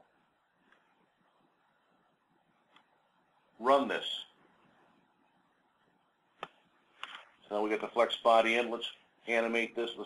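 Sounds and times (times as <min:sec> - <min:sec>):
man's voice: 0:03.6 - 0:04.4, 0:07.5 - 0:10.0.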